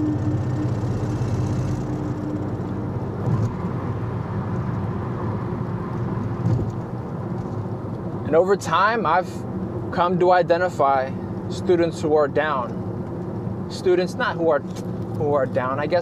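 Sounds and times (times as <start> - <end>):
road and engine rumble: 0.0 - 16.0.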